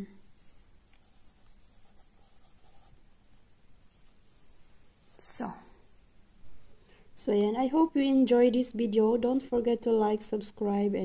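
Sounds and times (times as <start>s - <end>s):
pencil scratching on paper: 0.4s - 3.0s.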